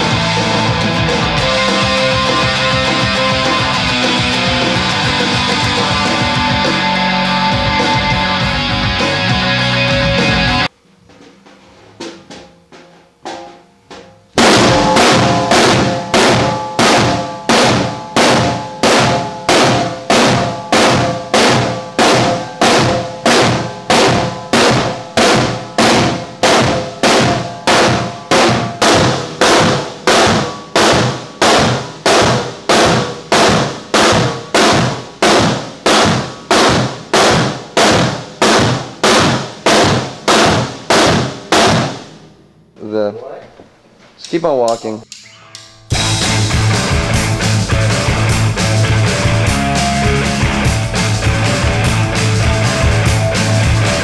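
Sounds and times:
drum kits playing: 0.0 - 42.2, 45.9 - 54.0.

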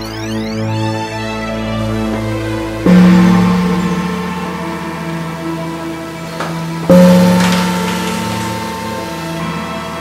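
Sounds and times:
large gong ringing: 2.8 - 10.0.

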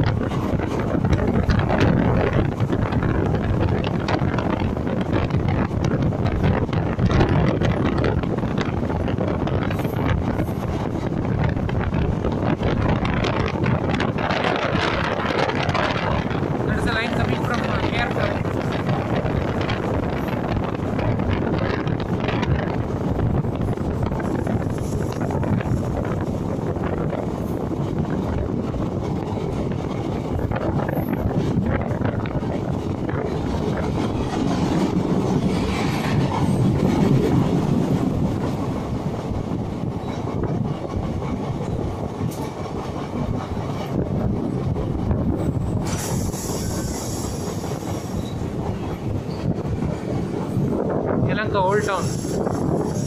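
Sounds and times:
train wheels rumbling on rails: 0.0 - 53.0.

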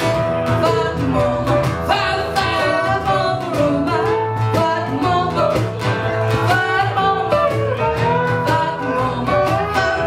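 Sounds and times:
cajon beat: 0.0 - 10.0
strummed acoustic guitars: 0.0 - 10.0.

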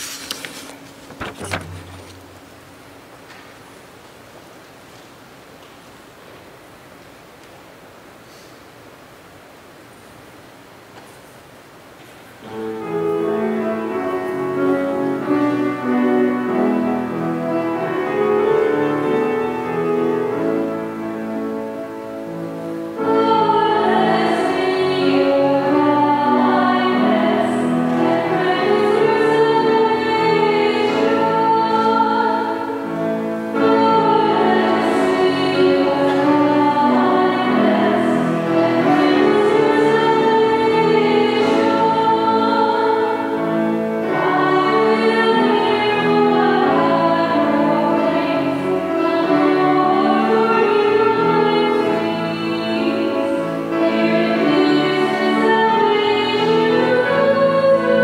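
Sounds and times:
room hiss: 0.0 - 58.0
church singing with long held notes: 12.4 - 58.0.

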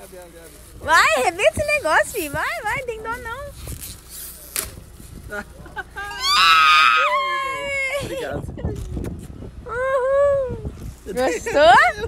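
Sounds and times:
person squealing with delight: 6.1 - 7.8.

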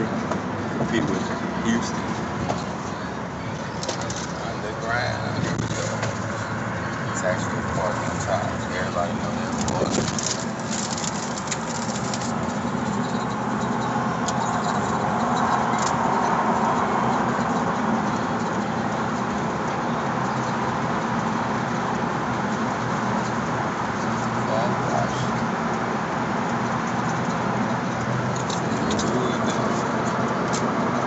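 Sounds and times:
car road noise hum: 0.0 - 31.0.

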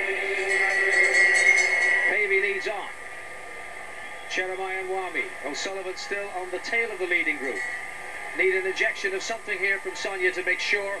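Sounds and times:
steady ringing tones: 0.0 - 11.0.

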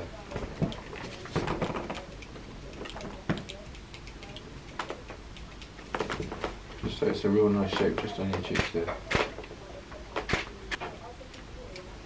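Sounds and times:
quiet room hum: 0.0 - 12.0.

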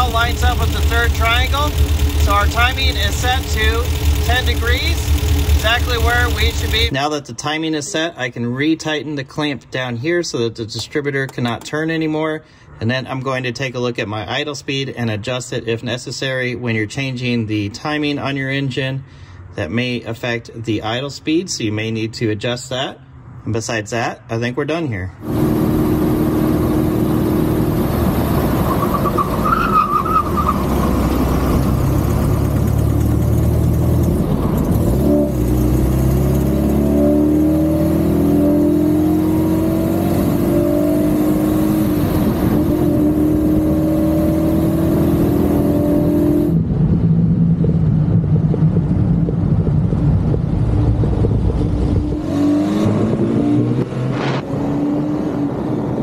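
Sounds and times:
car engine accelerating: 0.0 - 6.9, 25.2 - 56.0.

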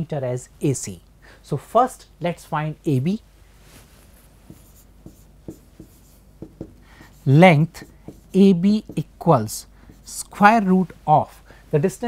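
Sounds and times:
writing scratching on a board: 4.5 - 10.4.

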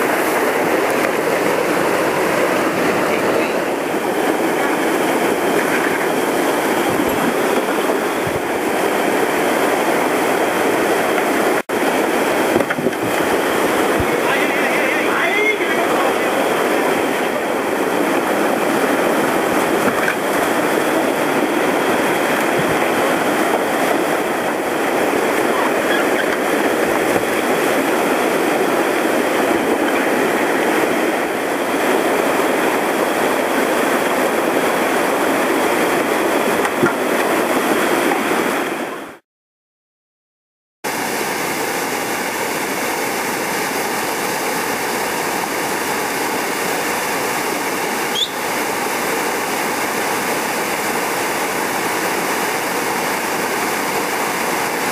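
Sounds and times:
whitewater rapids rushing: 0.0 - 39.2, 40.9 - 54.9.

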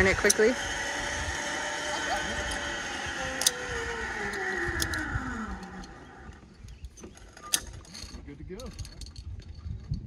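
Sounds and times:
zip line trolley whirring: 0.0 - 9.9.

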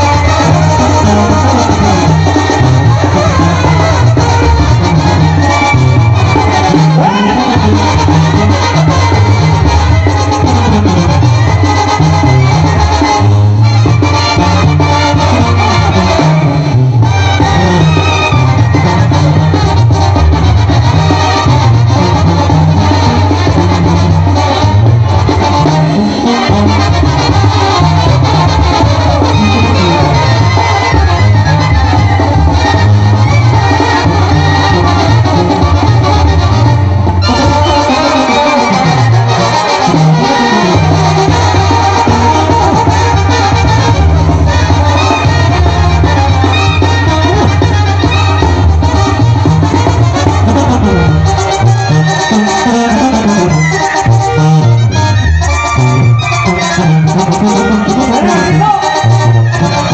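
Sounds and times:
brass band playing: 0.0 - 59.9
percussion beat: 0.0 - 59.9
sousaphone bass line: 0.0 - 59.9.

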